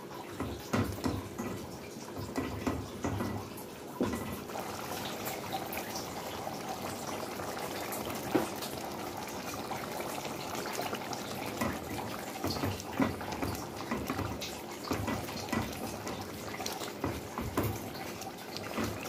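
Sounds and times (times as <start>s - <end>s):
stew simmering and bubbling: 0.0s - 19.0s.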